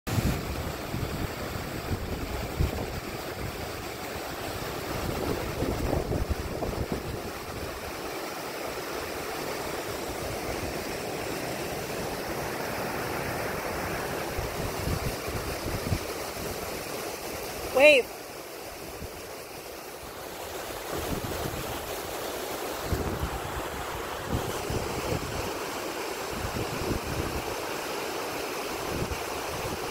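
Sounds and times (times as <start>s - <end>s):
wind buffeting microphone: 0.1s - 8.0s, 14.2s - 16.7s, 20.8s - 22.0s, 22.8s - 25.5s
waterfall and creek rushing: 0.1s - 29.9s.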